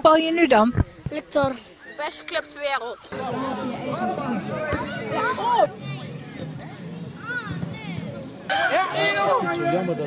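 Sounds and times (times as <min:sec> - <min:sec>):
children shouting and calling out: 0:00.7 - 0:09.6.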